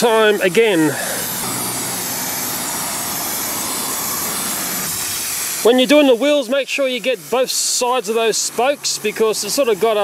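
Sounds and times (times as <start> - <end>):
aerosol can spraying hiss: 0.8 - 5.8.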